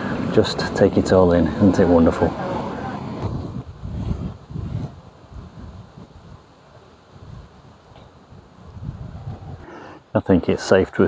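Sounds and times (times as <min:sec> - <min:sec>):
wind buffeting microphone: 0:00.0 - 0:09.7.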